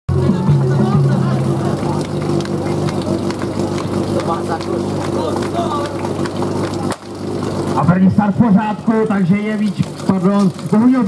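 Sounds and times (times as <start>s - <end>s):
pump engine running: 0.1s - 11.0s.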